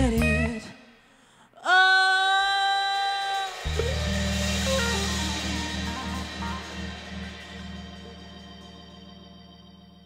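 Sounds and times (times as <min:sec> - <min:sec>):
soul band playing: 0:00.0 - 0:00.8, 0:03.4 - 0:10.0
descending guitar notes: 0:03.6 - 0:10.0
held scooping note: 0:03.6 - 0:10.0
low sustained chord: 0:03.7 - 0:10.0.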